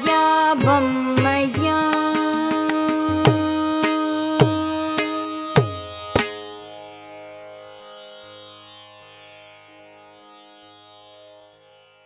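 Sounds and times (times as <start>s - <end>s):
veena and strings held note: 0.0s - 12.0s
sharp drum stroke: 5.6s - 6.3s.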